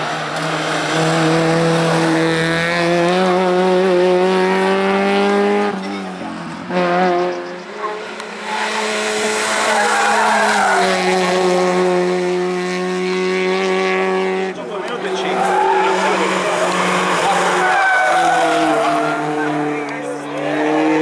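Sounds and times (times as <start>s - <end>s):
race car engine at high revs: 0.0s - 21.0s
spectators' voices: 14.5s - 21.0s.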